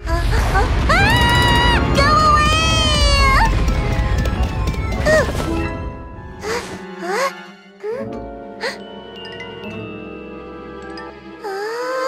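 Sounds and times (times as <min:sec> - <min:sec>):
background music: 0:00.3 - 0:12.0.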